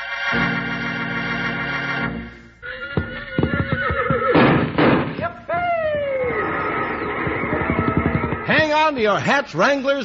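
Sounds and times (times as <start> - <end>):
horse whinnying: 2.6 - 8.6.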